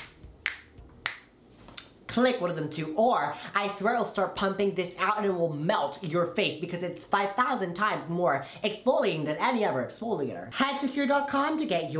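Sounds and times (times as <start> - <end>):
finger snapping: 0.0 - 1.9.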